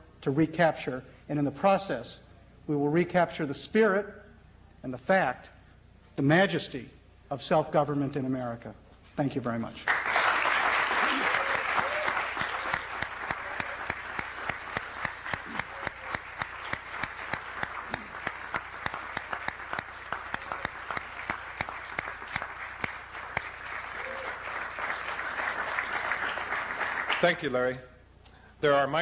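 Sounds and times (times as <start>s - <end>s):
audience applauding: 9.9s - 27.7s.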